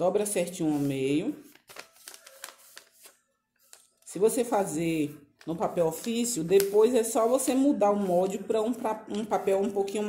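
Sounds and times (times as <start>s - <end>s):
paper crinkling and folding: 0.6s - 4.2s, 5.4s - 8.3s.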